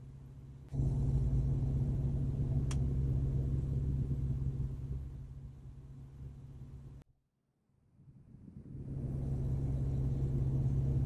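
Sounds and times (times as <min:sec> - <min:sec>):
vehicle engine rumble: 0:00.0 - 0:07.1, 0:08.1 - 0:11.0.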